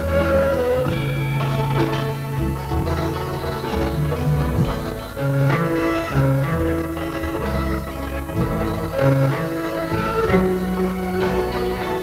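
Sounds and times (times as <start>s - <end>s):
bass line: 0.0s - 12.0s
plucked strings: 0.0s - 12.0s.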